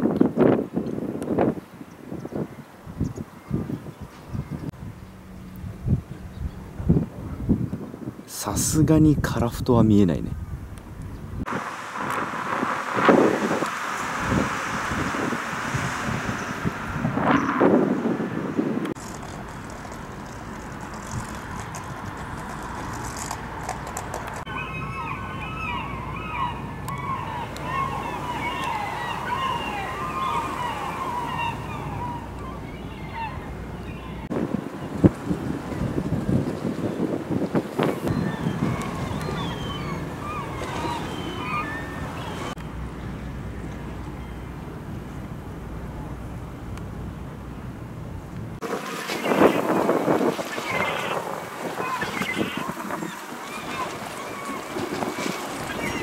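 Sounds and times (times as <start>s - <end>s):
wind on microphone: 0.0s - 42.6s, 48.1s - 56.0s
birds calling: 11.0s - 35.0s, 37.8s - 42.7s, 48.7s - 56.0s
sea surf: 11.4s - 44.5s, 48.5s - 56.0s.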